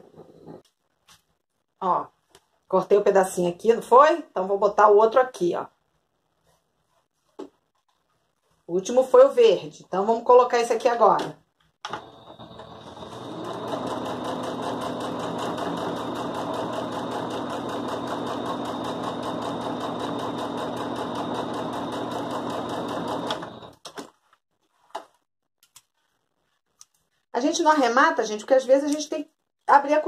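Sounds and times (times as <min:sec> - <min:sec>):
sewing machine stitching: 0:11.8 - 0:23.8.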